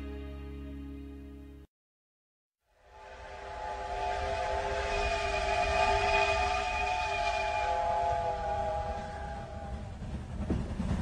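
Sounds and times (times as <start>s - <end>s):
train whistle chord: 2.8s - 9.9s.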